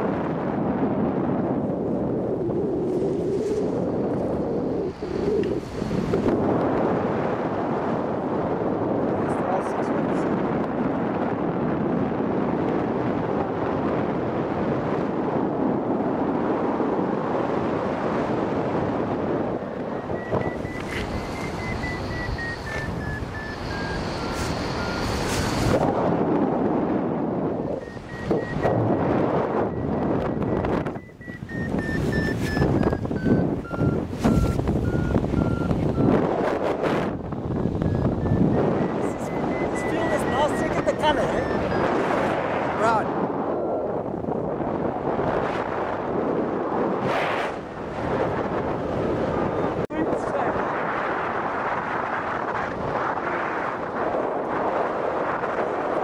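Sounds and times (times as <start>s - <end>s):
wind rushing on microphone: 0.0s - 56.0s
variometer beeps: 19.5s - 25.8s, 27.5s - 36.7s, 37.4s - 42.4s.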